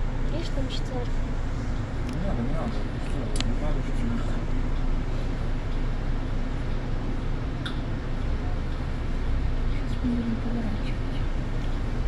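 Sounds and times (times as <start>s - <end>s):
bus engine droning: 0.0s - 12.0s.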